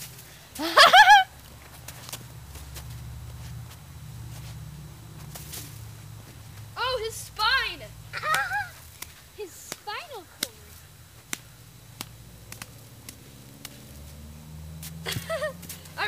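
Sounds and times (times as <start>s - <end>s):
children laughing and calling out: 8.1s - 10.4s, 15.0s - 16.0s.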